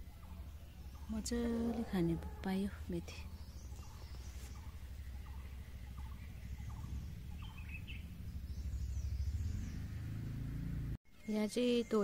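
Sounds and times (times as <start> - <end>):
uneven low rumble: 0.0 - 10.0
faint bird chirps: 0.0 - 10.1.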